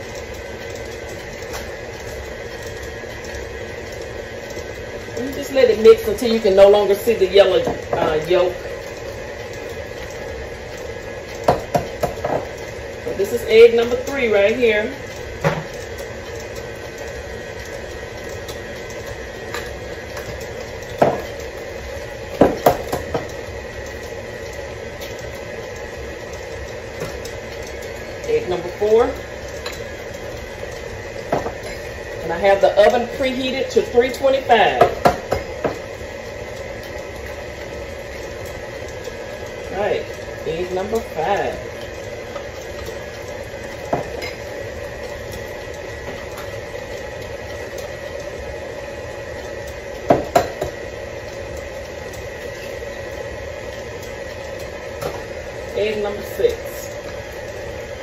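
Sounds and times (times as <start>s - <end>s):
stand mixer beating batter: 0.0s - 58.0s.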